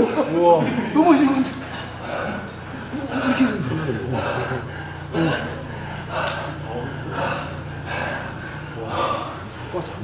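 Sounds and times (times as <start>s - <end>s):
low steady hum: 0.0s - 10.0s
heavy gasping breaths: 1.6s - 10.0s.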